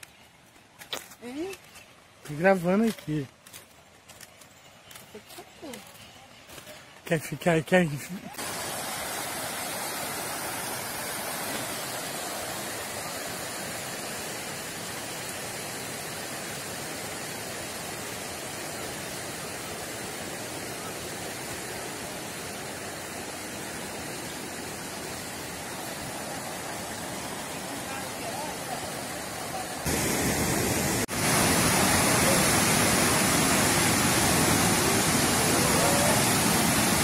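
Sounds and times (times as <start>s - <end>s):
water rushing down a channel: 7.1s - 37.0s.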